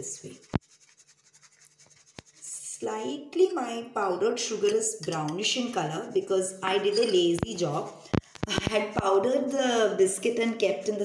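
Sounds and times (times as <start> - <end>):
woman speaking: 0.0 - 0.4, 2.4 - 11.0
sieve shaking sugar: 0.0 - 2.6.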